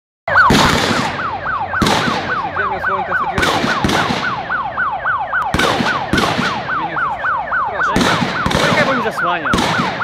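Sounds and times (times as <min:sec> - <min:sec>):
electronic siren sweeping: 0:00.3 - 0:10.0
sharp cracks: 0:00.4 - 0:02.6, 0:03.2 - 0:04.6, 0:05.4 - 0:06.8, 0:07.8 - 0:10.0.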